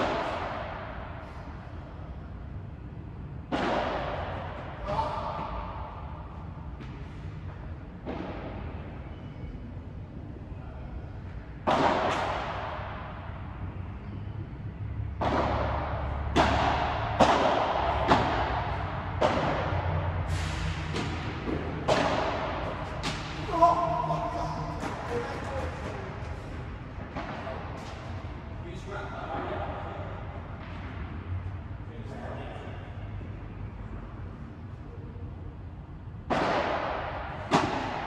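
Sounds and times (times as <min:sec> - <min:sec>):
padel ball hit by rackets: 0:03.5 - 0:04.6, 0:11.6 - 0:13.1, 0:15.0 - 0:19.9, 0:20.9 - 0:23.4, 0:36.3 - 0:38.0.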